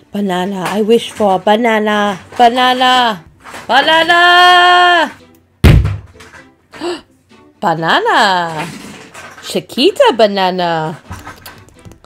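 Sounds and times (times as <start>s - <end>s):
loud deep thud: 5.6s - 6.2s.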